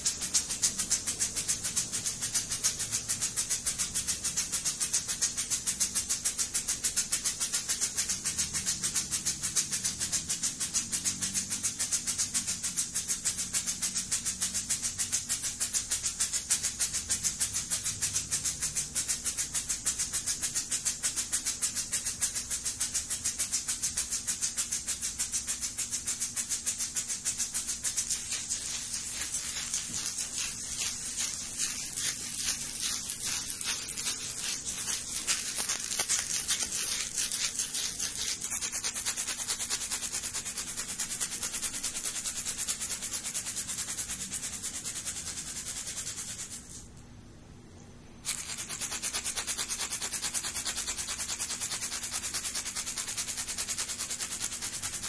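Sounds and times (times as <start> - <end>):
shaker rattling: 0.0 - 47.1, 48.2 - 55.0.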